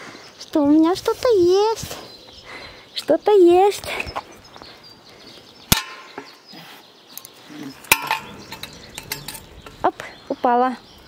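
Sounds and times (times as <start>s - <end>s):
metallic clinks on wire-mesh cage: 7.8s - 9.9s.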